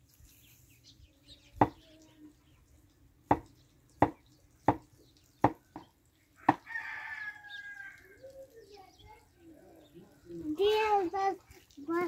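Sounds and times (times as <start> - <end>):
knife chopping on wooden board: 3.3 - 4.8
rooster crowing: 6.4 - 8.1.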